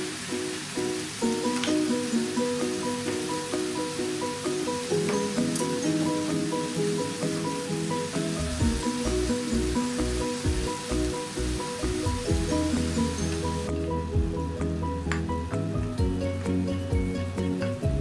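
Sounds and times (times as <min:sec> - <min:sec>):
food sizzling in a frying pan: 0:00.0 - 0:17.9
background music: 0:00.0 - 0:18.0.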